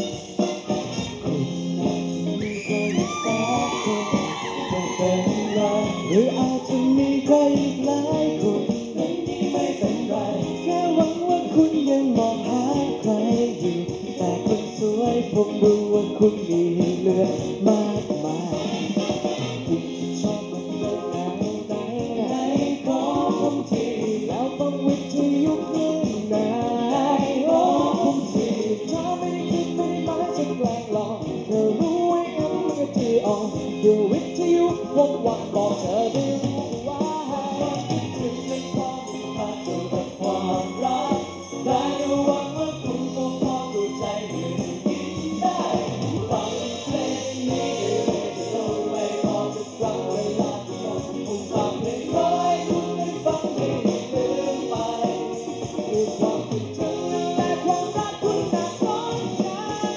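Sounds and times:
pop song with harmony vocals: 0.0 - 59.9
steady beat: 0.0 - 59.9
voices singing together: 2.4 - 59.9.

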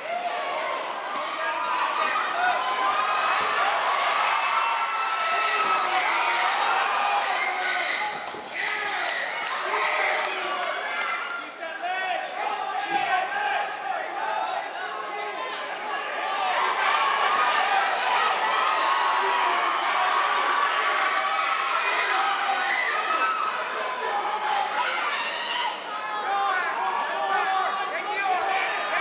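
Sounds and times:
crowd shouting and cheering: 0.0 - 29.0.

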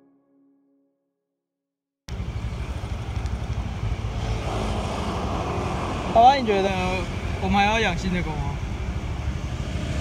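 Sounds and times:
motorbike engine hum: 2.1 - 7.4
road and traffic noise: 2.1 - 10.0.

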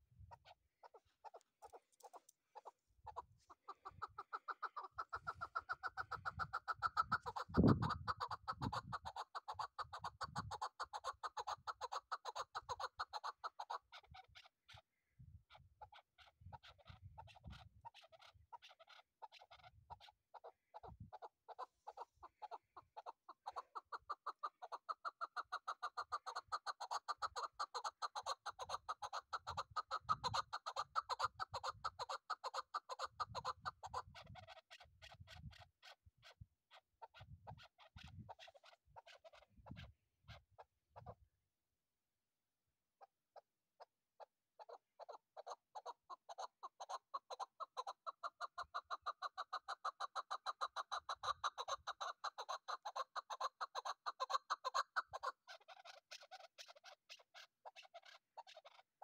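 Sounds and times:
partridge calling: 0.0 - 41.2, 44.6 - 58.8.

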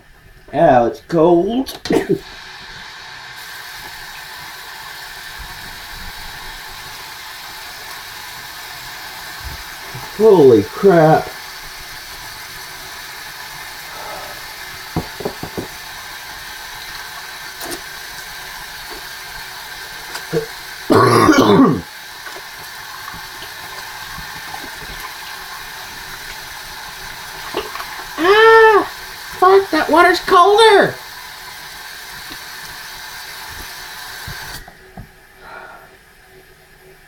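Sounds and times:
background hiss: 0.0 - 37.0
man coughing: 1.9 - 2.2, 20.9 - 21.9
man short voiced sound: 20.4 - 21.9, 28.2 - 31.0.

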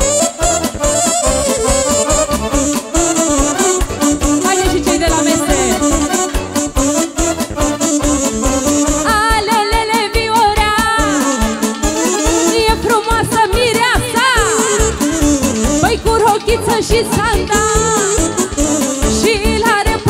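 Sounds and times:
wedding band dance music: 0.0 - 20.0
woman singing: 3.1 - 6.2, 9.0 - 20.0.

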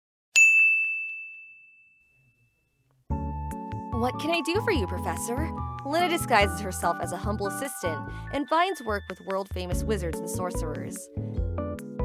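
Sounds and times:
bright bell ding: 0.4 - 2.7.

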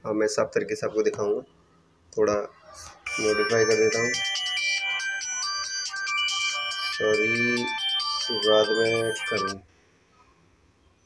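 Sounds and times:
smartphone ringtone melody: 3.0 - 9.6.

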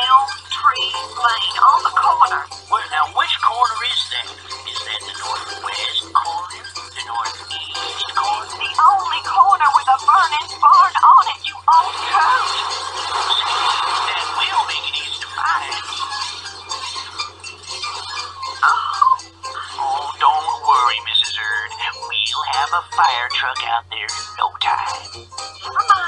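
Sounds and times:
low hum: 0.0 - 22.9
music: 0.0 - 26.0
voices: 0.0 - 26.0.

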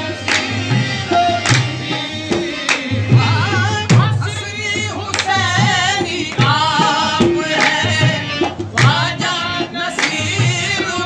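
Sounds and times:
harmonium: 0.0 - 11.0.

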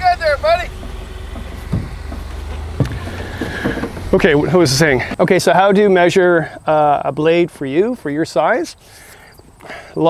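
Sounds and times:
engine low rumble: 0.0 - 8.1.

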